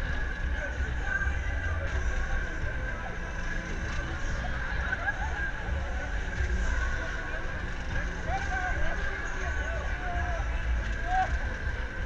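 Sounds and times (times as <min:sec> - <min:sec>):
low rumble of fairground ride: 0:00.0 - 0:12.0
thin steady whine: 0:00.0 - 0:12.0.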